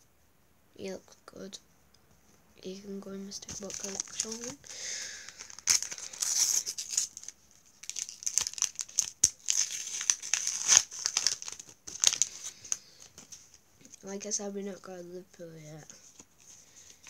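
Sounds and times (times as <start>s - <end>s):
wrapper tearing and crinkling: 3.5s - 13.2s.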